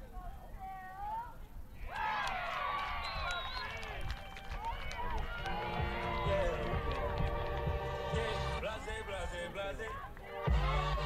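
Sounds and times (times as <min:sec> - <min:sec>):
crowd cheering and shouting: 0:01.9 - 0:11.0
music with held tones: 0:10.3 - 0:11.0.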